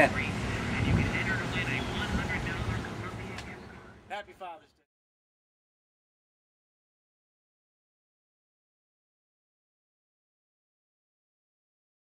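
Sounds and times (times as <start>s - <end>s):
faint background voices: 0.0s - 4.2s.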